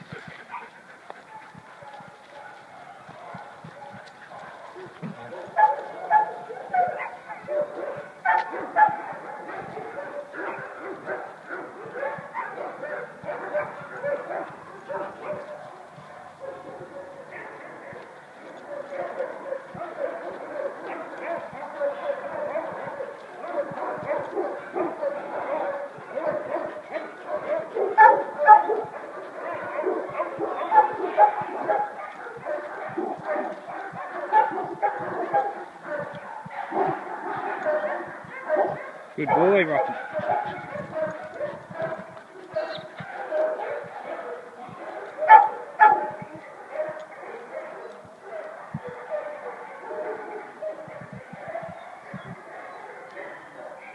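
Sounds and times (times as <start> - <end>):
dogs barking and yipping: 0.0 - 53.9.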